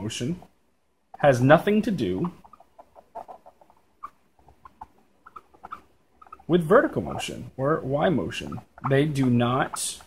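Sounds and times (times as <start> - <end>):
marker squeaking on whiteboard: 1.2 - 7.5, 8.2 - 10.0.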